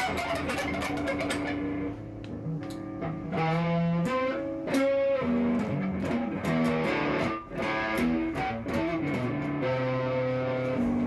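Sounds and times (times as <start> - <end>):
electric guitar note ringing: 0.0 - 11.0.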